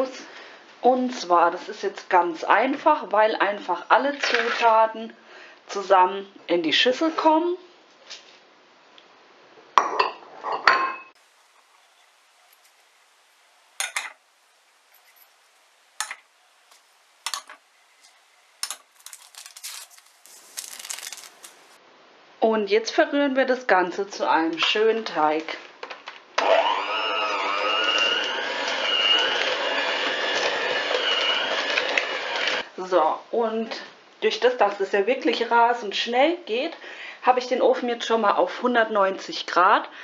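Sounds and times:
glass bowls clinking: 9.8s - 11.2s, 13.8s - 16.3s, 17.2s - 19.3s
electric hand mixer running: 26.4s - 32.6s.

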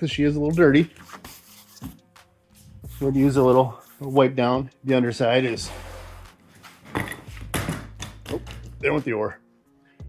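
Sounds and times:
hand rubbing inflatable tube: 5.5s - 6.9s.

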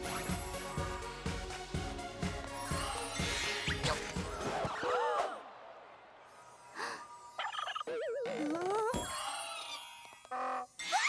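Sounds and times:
cartoon rattling warble effect: 7.4s - 10.0s.

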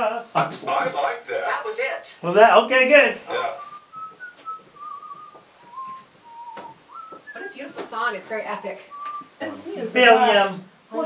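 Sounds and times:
person whistling a tune: 3.6s - 7.8s, 8.9s - 9.3s.

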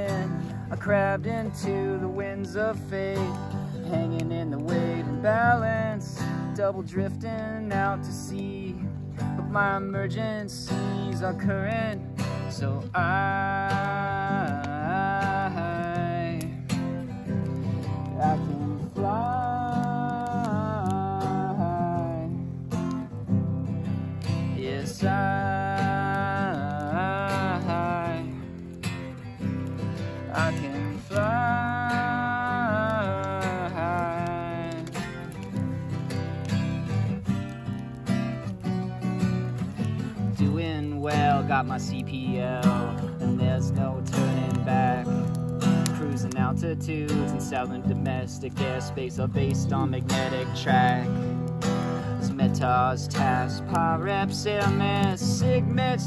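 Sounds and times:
acoustic guitar strumming: 0.0s - 56.0s
sliding held melody notes: 0.0s - 56.0s.

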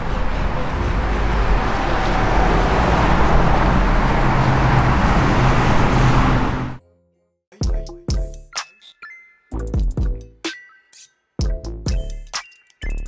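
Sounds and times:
street traffic rumble: 0.0s - 6.8s.

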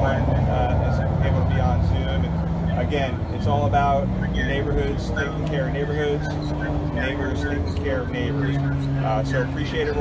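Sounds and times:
man speaking: 0.0s - 10.0s
vehicle engine idling: 0.0s - 10.0s.

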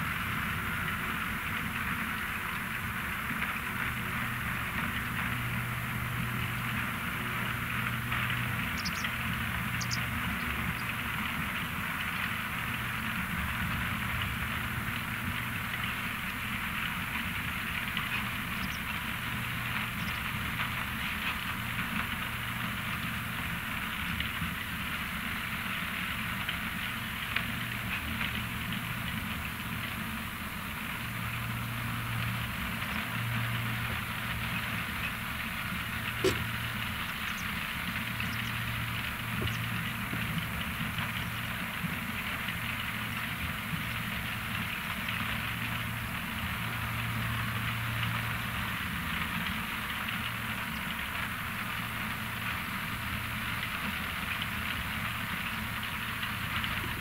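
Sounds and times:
engine drone: 0.0s - 57.0s
sharp knock: 36.2s - 36.4s.

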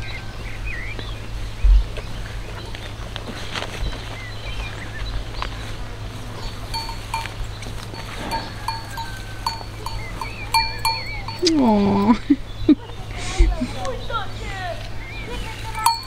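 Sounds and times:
small bell clinking: 6.4s - 12.1s, 15.7s - 16.0s.

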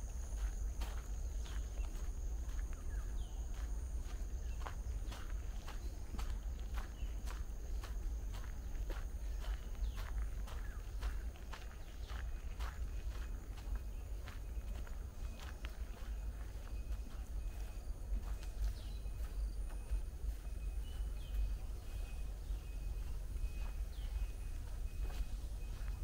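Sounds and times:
footsteps walking: 0.0s - 26.0s.

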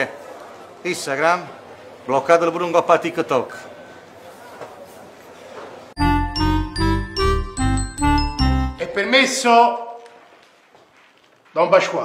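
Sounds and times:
pulsing bass beat: 6.0s - 8.8s
melody of short notes: 6.0s - 9.2s.

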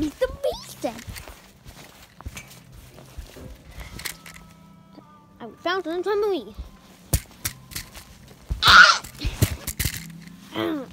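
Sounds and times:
scuffs and taps of handling objects: 0.0s - 4.6s, 6.6s - 10.5s.

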